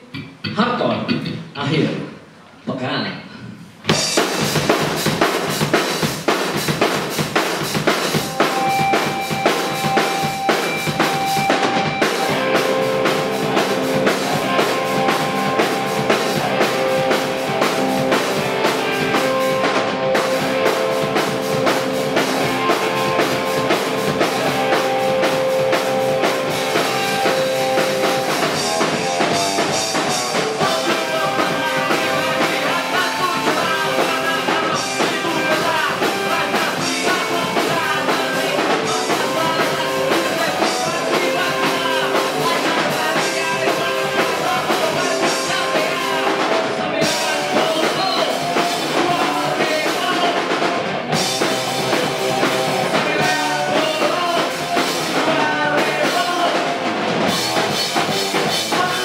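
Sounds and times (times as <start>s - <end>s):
punk band playing: 3.8s - 59.0s
held guitar notes ringing: 8.1s - 30.3s.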